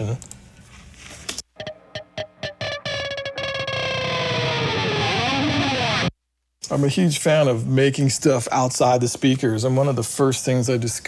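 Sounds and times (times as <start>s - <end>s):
distorted electric guitar: 1.6s - 6.2s.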